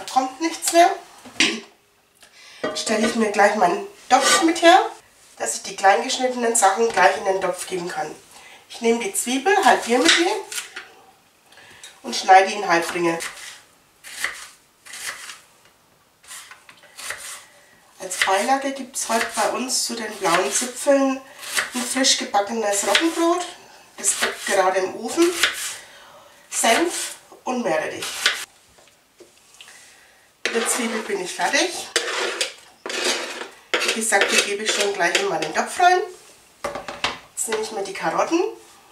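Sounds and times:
knife slicing onion: 0:12.8 - 0:15.4, 0:16.2 - 0:17.5, 0:18.1 - 0:20.8, 0:21.4 - 0:22.0, 0:22.8 - 0:23.4, 0:24.0 - 0:25.8, 0:28.0 - 0:28.5
knife scraping plastic cutting board: 0:13.2 - 0:15.4, 0:25.2 - 0:25.8, 0:30.4 - 0:35.5.

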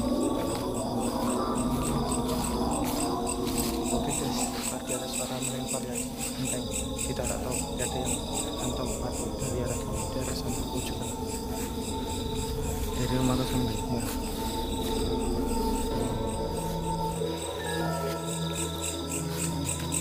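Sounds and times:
crickets chirping: 0:00.0 - 0:20.0.

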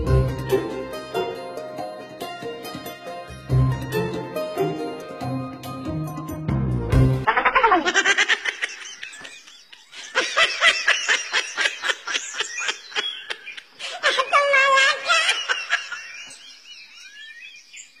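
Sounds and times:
person laughing hard: 0:07.2 - 0:16.1.

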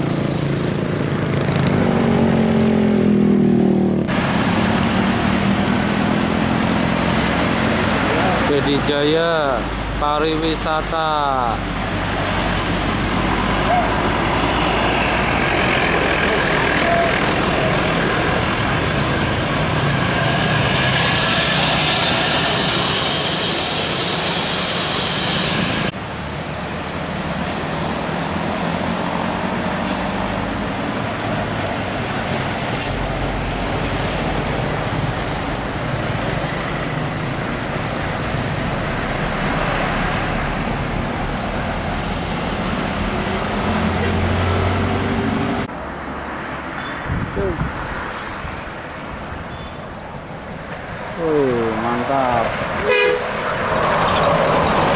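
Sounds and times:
diesel coach engines labouring: 0:00.0 - 0:54.9
road traffic: 0:00.0 - 0:54.9
vehicles passing with rushing noise: 0:00.0 - 0:54.9
short high hisses: 0:22.4 - 0:25.9.

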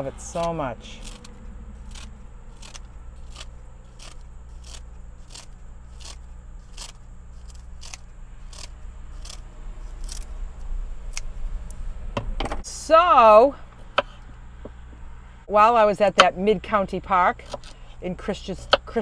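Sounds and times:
scissors snipping paper: 0:00.2 - 0:10.3.

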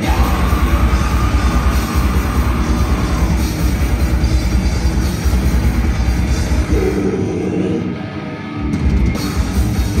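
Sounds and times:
fast drumming: 0:00.0 - 0:07.0
distorted electric guitar and bass: 0:00.0 - 0:10.0.

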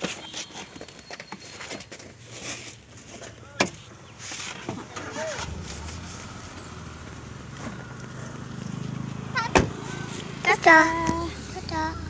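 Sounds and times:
car engine humming: 0:02.1 - 0:12.0
car door slamming: 0:09.4 - 0:09.9.

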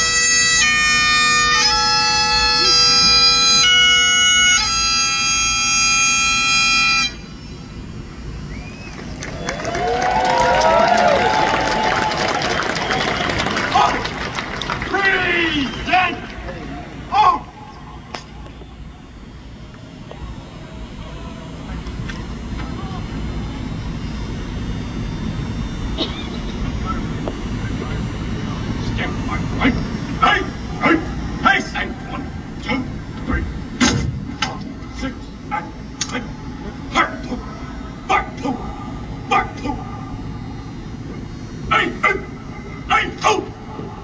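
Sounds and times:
faint crowd chatter: 0:00.0 - 0:44.0
shouted drill commands: 0:09.6 - 0:17.9, 0:28.6 - 0:33.8, 0:34.7 - 0:40.6, 0:41.5 - 0:44.0.

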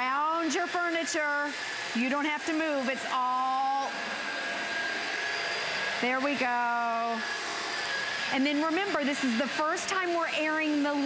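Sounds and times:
vacuum cleaner running on carpet: 0:00.0 - 0:11.0.

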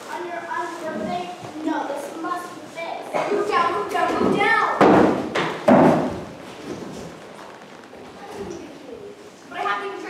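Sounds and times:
thuds on wooden stage floor: 0:04.2 - 0:06.4.

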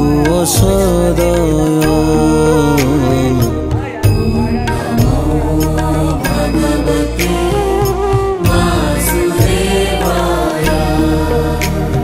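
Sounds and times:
instrumental accompaniment: 0:00.0 - 0:12.0
person singing a chant: 0:00.0 - 0:12.0.

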